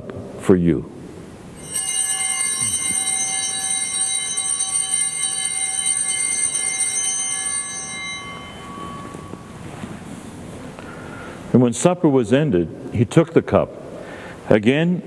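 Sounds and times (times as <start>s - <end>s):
altar bells ringing: 1.6s - 10.4s.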